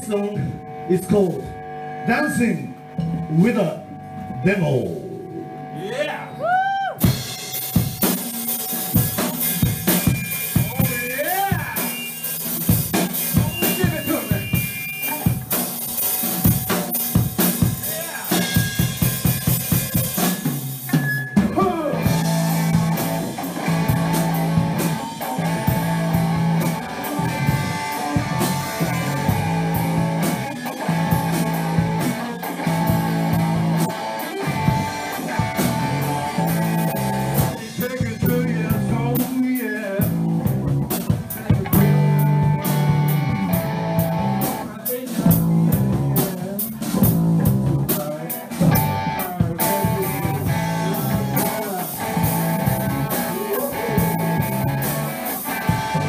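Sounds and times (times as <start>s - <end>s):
rock band playing live: 0.0s - 5.8s, 6.4s - 56.0s.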